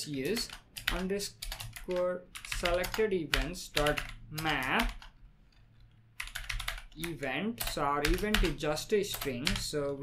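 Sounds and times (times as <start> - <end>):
computer keyboard typing: 0.0 - 10.0.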